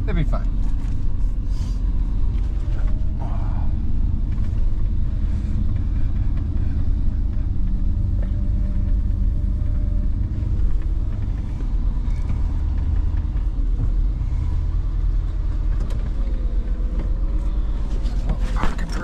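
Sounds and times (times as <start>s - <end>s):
truck engine driving slowly: 0.0s - 19.0s.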